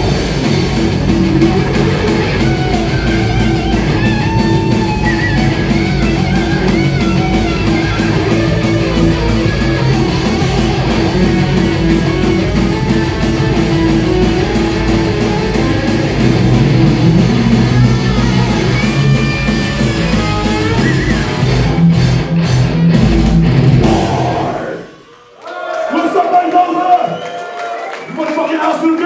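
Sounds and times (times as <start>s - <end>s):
fast dense drumming: 0.0s - 25.0s
melodic guitar line: 0.0s - 25.0s
distorted electric guitars: 0.0s - 25.4s.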